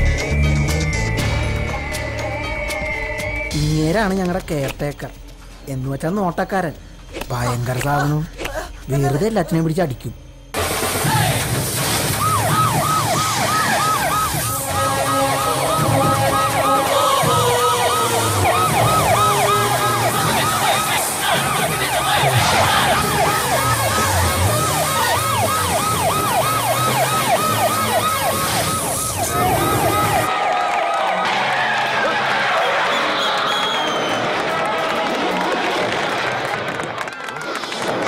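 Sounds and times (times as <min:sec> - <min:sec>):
film background music: 0:00.0 - 0:30.3
fast yelping siren: 0:12.1 - 0:33.6.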